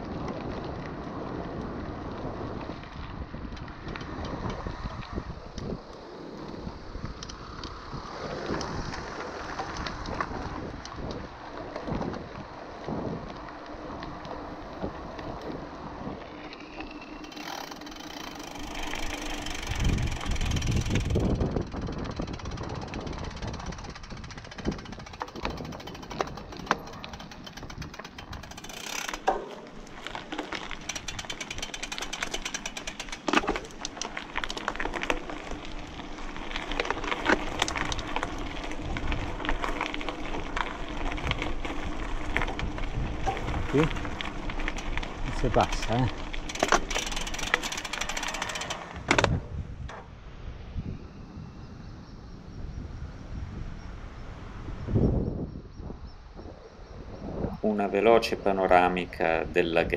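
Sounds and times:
wind on microphone: 0.0 - 16.4, 18.6 - 28.7, 49.0 - 57.9
bike tyres crunching over stones: 0.0 - 50.2
bike rattling: 0.0 - 51.4, 57.7 - 59.9.

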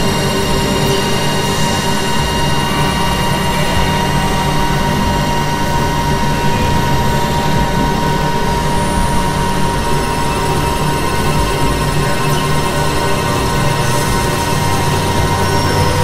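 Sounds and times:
high synthesizer tone: 0.0 - 16.0
synthesizer drone: 0.0 - 16.0.

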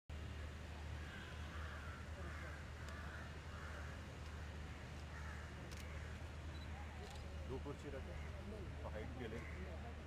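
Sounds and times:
crows cawing: 1.0 - 6.2, 9.2 - 9.8.

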